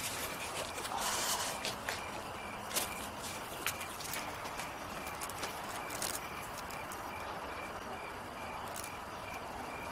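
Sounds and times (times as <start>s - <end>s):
footsteps on hard ground: 0.0s - 6.6s
crickets chirping: 0.0s - 9.9s.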